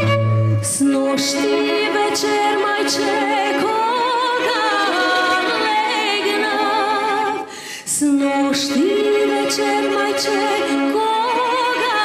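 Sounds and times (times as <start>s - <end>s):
violins and cello: 0.0s - 12.0s
woman singing folk song: 0.6s - 12.0s.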